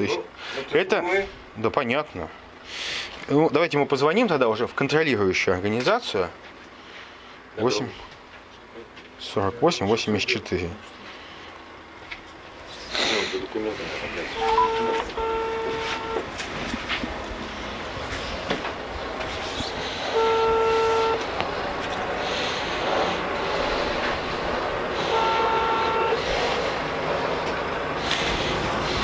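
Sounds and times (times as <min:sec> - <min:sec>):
phone ringback tone beeps: 0:14.4 - 0:16.2.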